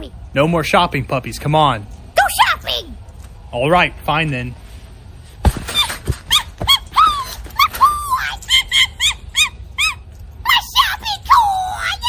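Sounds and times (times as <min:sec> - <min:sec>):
puppies yelping: 0:05.7 - 0:10.2
puppy whining: 0:05.7 - 0:10.3.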